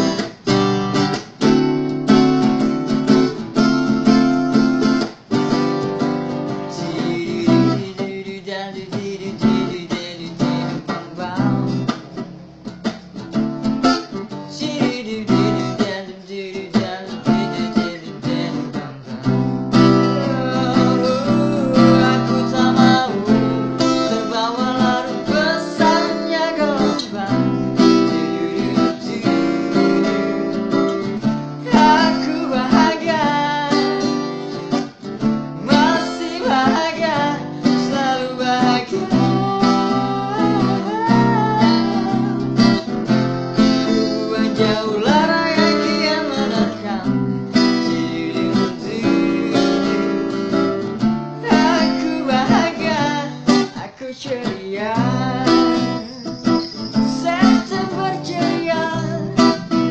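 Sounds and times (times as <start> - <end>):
acoustic guitar strumming: 0.0 - 59.9
man singing: 6.6 - 12.0, 14.5 - 34.8, 35.6 - 59.9.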